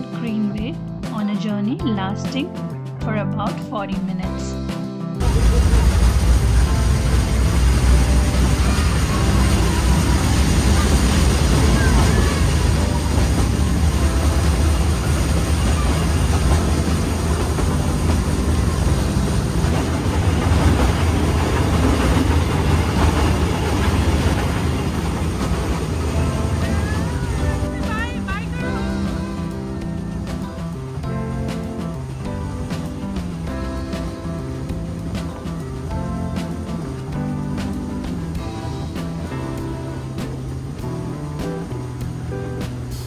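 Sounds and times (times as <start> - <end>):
train rumbling and rushing: 5.2 - 43.0.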